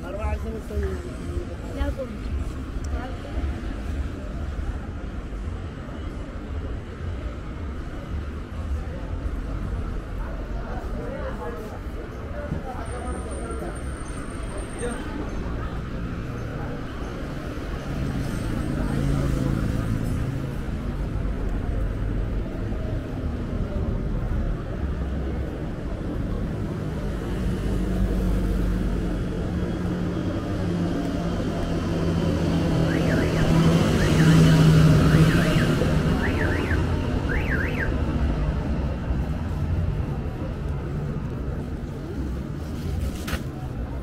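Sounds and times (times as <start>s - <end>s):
road traffic rumble: 0.0s - 44.0s
car alarm chirps: 32.8s - 37.9s.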